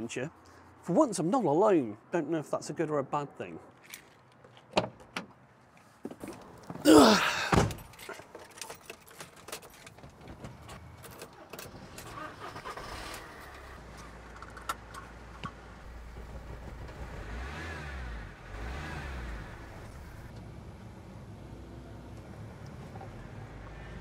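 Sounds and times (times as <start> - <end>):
keys jingling: 7.8 - 10.0
van engine starting and idling: 10.3 - 21.1.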